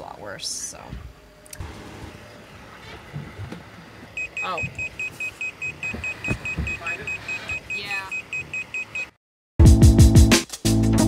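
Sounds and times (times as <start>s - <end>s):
high-pitched alarm beeping: 4.1s - 9.2s
music: 9.6s - 11.0s.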